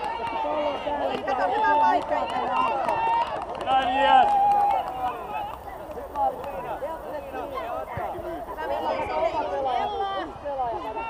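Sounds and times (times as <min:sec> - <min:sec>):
children calling and chattering: 0:04.8 - 0:11.0.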